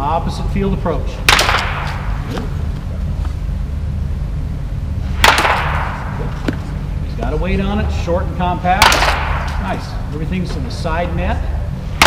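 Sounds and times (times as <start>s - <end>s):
steady low hum: 0.0s - 12.0s
baseball bat hitting ball: 1.2s - 2.6s, 5.1s - 6.6s, 8.7s - 9.9s.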